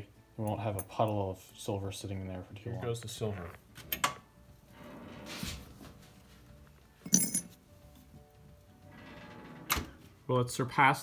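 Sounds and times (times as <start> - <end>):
coin clinking into crucible: 7.0 - 7.6.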